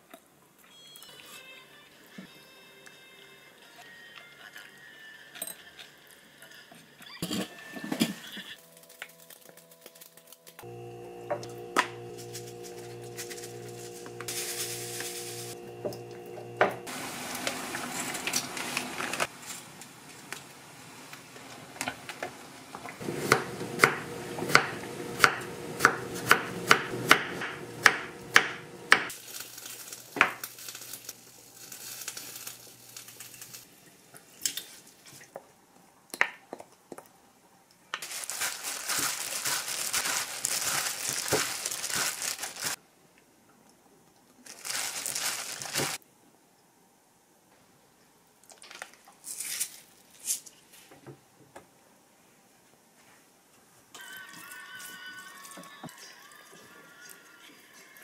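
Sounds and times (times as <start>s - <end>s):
steady hiss: 16.6s - 25.3s.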